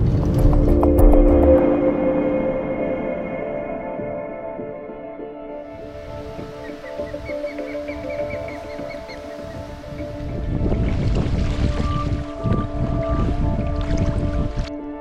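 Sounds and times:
wind buffeting microphone: 0.0 - 1.8, 5.7 - 15.0
choppy lake water: 0.0 - 2.4, 5.6 - 15.0
ambient music with drone tones: 0.0 - 15.0.

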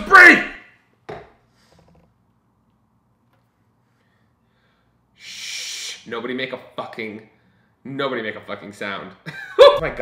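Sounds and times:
man's breathy hiss: 4.5 - 6.1.

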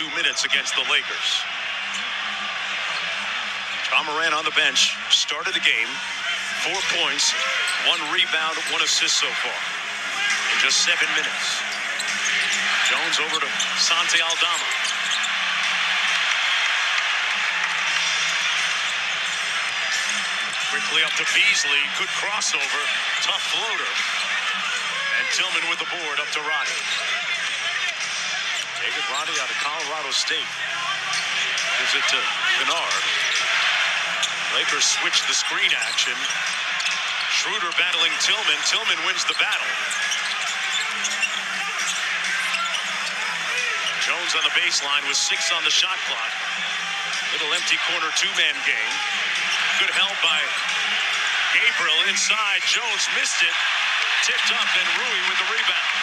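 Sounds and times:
arena crowd cheering: 0.0 - 56.0.

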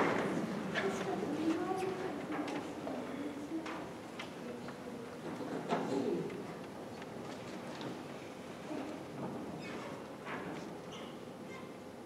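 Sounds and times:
faint murmur of voices: 0.0 - 12.0.

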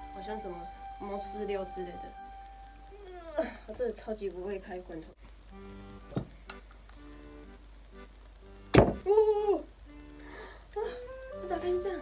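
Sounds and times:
soft background music: 0.0 - 7.6, 8.5 - 12.0.

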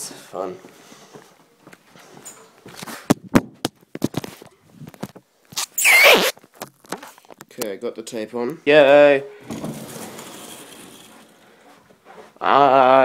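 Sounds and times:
tape clicking and crackling: 4.0 - 7.7
tape ripping screech: 5.5 - 7.2.

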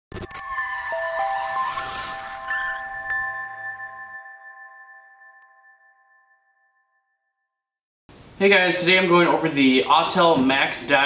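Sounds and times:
whoosh: 0.4 - 3.8.

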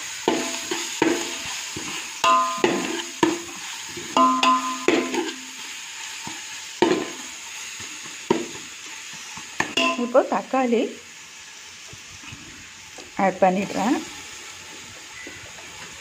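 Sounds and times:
onions sizzling in oil: 0.0 - 16.0
metal spatula scraping a pot: 0.3 - 5.6
spatula knocking on a ringing pot: 2.2 - 3.4, 4.2 - 5.3.

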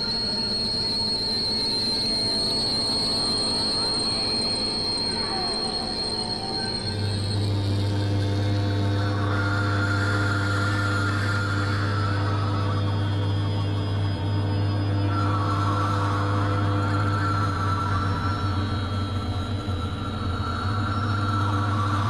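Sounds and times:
deep low drone: 0.0 - 22.0
high whining tone: 0.0 - 22.0
wavering higher tone: 0.0 - 22.0.

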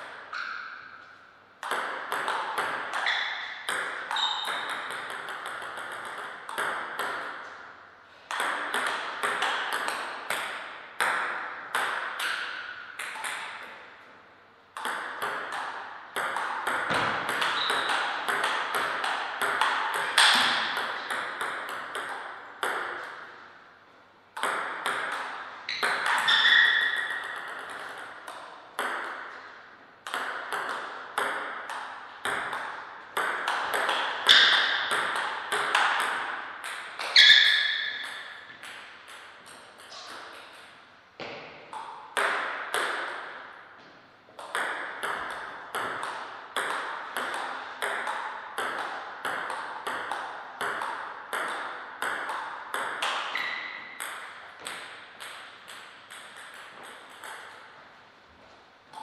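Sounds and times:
table tennis ball clicking: 1.6 - 7.4, 14.8 - 23.2, 44.4 - 57.7.

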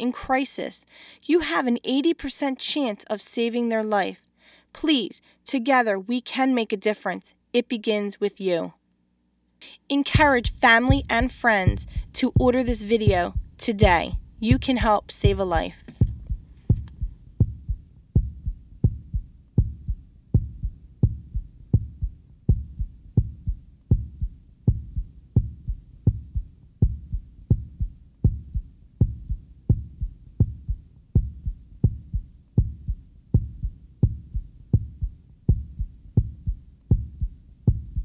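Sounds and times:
heartbeat thumps: 10.1 - 38.0.

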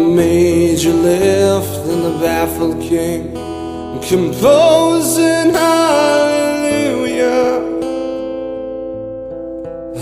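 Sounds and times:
person singing: 0.0 - 8.5
guitar chords strummed: 0.0 - 10.0.

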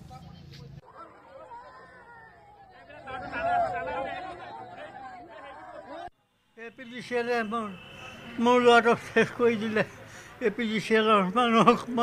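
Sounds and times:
people talking and crying: 0.5 - 6.2.

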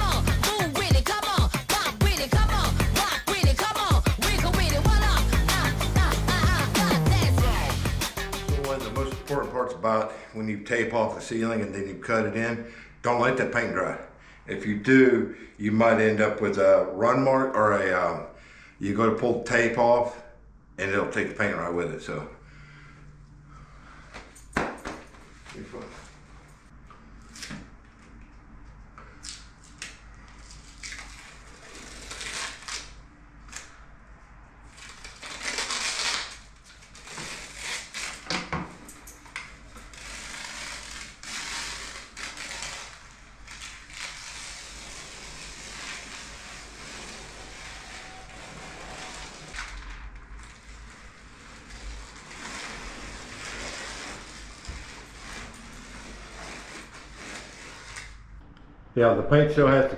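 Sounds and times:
tape peeling off wall: 29.1 - 33.8, 34.6 - 58.3.

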